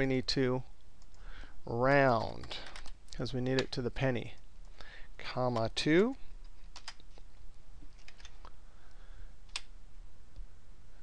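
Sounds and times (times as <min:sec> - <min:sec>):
computer keyboard keystrokes: 0:06.7 - 0:07.0.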